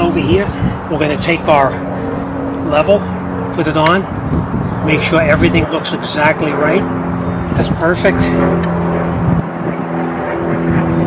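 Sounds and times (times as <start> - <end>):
motor running steadily: 0.0 - 11.0.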